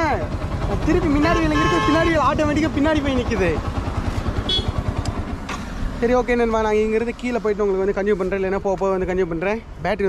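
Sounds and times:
motorcycle engine idling: 0.0 - 9.6.

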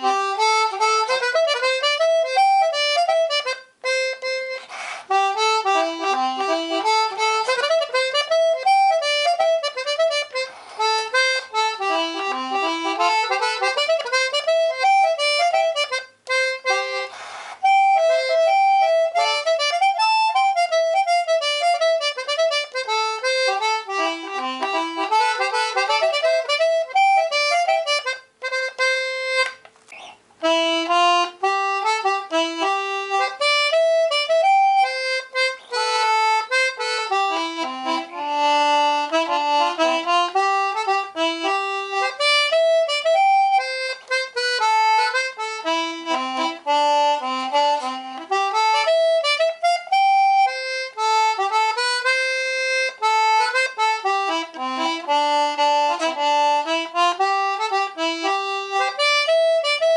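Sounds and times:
concertina playing a tune: 0.0 - 59.9.

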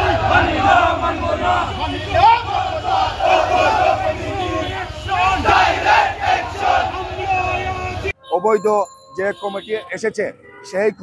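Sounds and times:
crowd of men shouting slogans: 0.0 - 8.1.

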